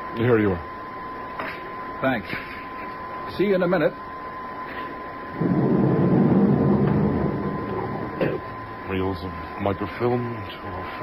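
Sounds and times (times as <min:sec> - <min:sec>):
faint high whine: 0:00.0 - 0:11.0
mechanical whirring: 0:05.2 - 0:09.1.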